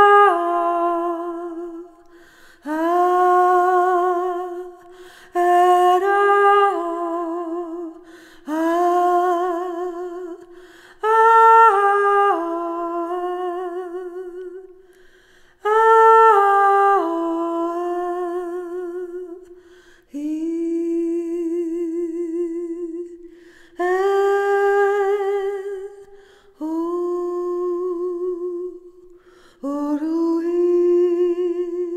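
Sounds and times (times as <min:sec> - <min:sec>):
woman singing wordless melody: 0:00.0 - 0:31.9
breaths: 0:02.0 - 0:02.7, 0:04.8 - 0:05.4, 0:08.0 - 0:08.5, 0:10.4 - 0:11.0, 0:14.8 - 0:15.6, 0:19.4 - 0:20.2, 0:23.2 - 0:23.8, 0:26.0 - 0:26.6, 0:29.1 - 0:29.7.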